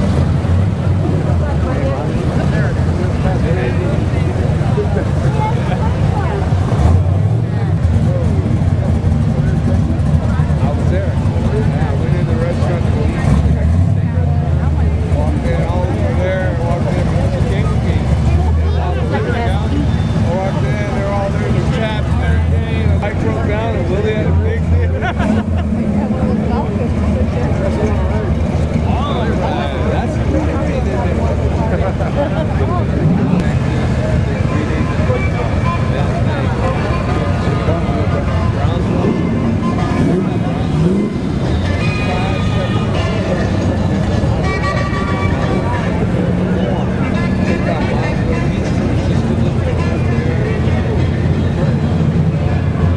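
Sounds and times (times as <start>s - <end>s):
cars driving slowly past: 0.0s - 52.9s
crowd chatter: 0.0s - 52.9s.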